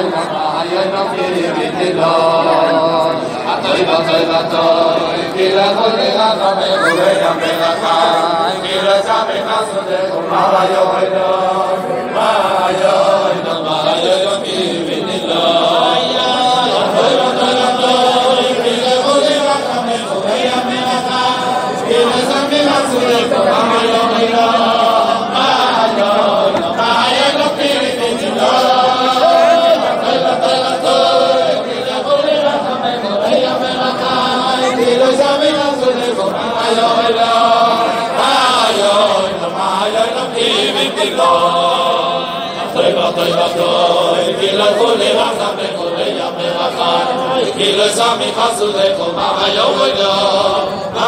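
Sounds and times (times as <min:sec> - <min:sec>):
men singing wordless melody: 0:00.0 - 0:51.0.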